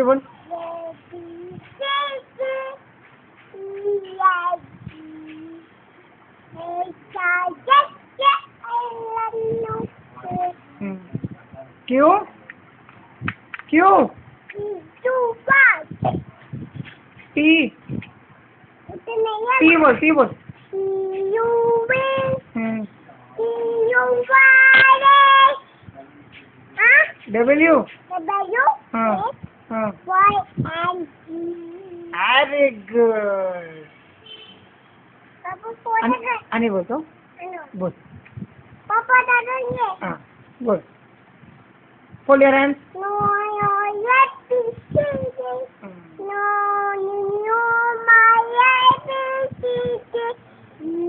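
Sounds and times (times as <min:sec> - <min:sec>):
young boy singing: 0:00.3 - 0:05.9, 0:06.5 - 0:11.4, 0:14.5 - 0:16.6, 0:18.8 - 0:26.1, 0:26.8 - 0:27.3, 0:27.9 - 0:32.2, 0:35.4 - 0:36.5, 0:38.8 - 0:40.0, 0:42.8 - 0:51.0
boy singing high notes: 0:00.5 - 0:02.8, 0:03.5 - 0:05.8, 0:23.4 - 0:25.7, 0:42.9 - 0:51.0.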